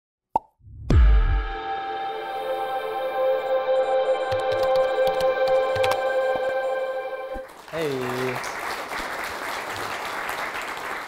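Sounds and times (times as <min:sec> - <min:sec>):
deep hit dropping in pitch: 0:00.7 - 0:01.6
held chord: 0:01.2 - 0:07.5.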